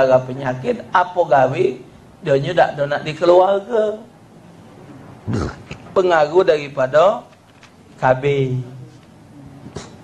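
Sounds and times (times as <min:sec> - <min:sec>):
man's low throaty sound: 0:05.2 - 0:06.0.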